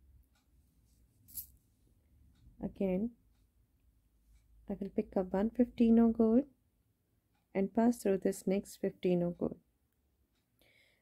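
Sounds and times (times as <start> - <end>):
thread rustling through beads: 1.2 - 1.6.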